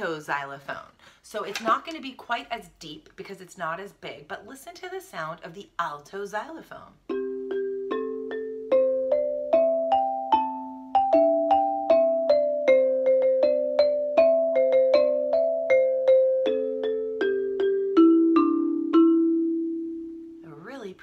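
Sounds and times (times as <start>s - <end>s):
xylophone played with soft mallets: 7.0s - 20.5s.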